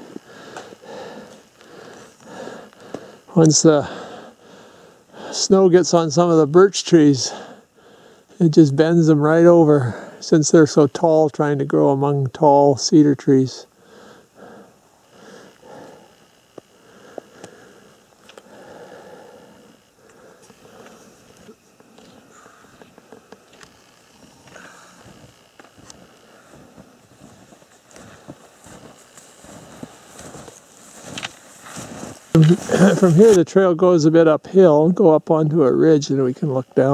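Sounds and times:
footsteps crunching through snow: 0:24.2 - 0:33.4.

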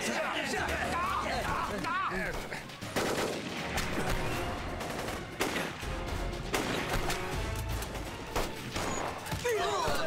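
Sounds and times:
gunshots: 0:02.8 - 0:10.0.

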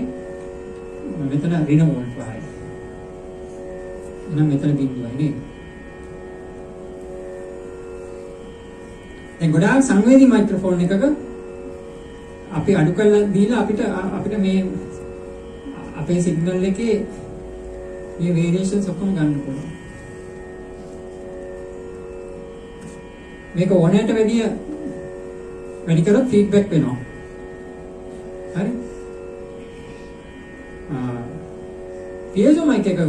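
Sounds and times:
drone of held tones: 0:00.0 - 0:33.0.

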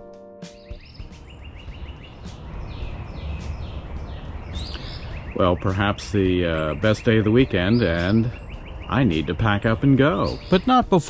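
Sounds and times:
birds chirping: 0:00.5 - 0:11.0.

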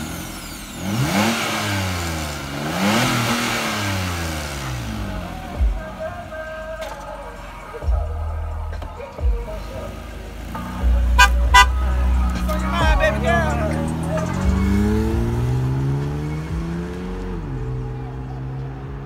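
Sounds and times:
car engine pulling away: 0:00.0 - 0:19.0
car horn toots: 0:10.6 - 0:14.8.

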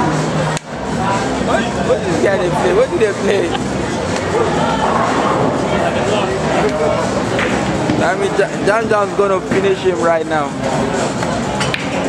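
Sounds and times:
indistinct background chatter: 0:00.0 - 0:12.0.

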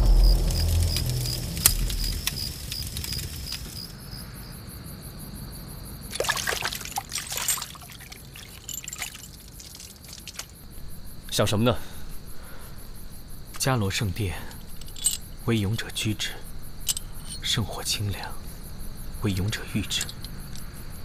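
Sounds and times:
low rumble: 0:00.0 - 0:04.0
scattered crackles: 0:00.0 - 0:04.1, 0:06.1 - 0:10.6
water trickling and bubbling: 0:06.1 - 0:10.6.

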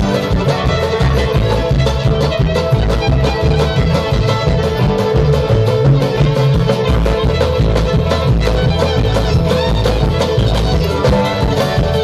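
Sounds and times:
acoustic guitar: 0:00.0 - 0:12.0
banjo: 0:00.0 - 0:12.0
bowed fiddle: 0:00.0 - 0:12.0
mandolin: 0:00.0 - 0:12.0
upright bass: 0:00.0 - 0:12.0.

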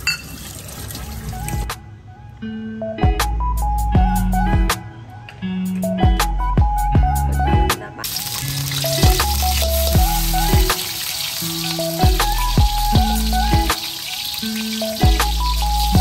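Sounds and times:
background music with bass line: 0:02.7 - 0:16.0
garlic sizzling in hot oil: 0:08.0 - 0:16.0.

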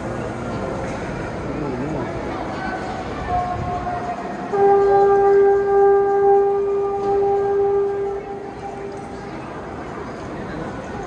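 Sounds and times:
crowd noise in workshop: 0:00.0 - 0:11.0
horn warning signal: 0:04.5 - 0:09.8.

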